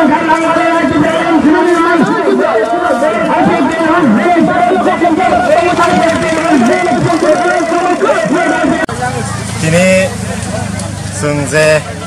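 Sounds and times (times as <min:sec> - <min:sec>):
man talking: 0:00.0 - 0:10.2.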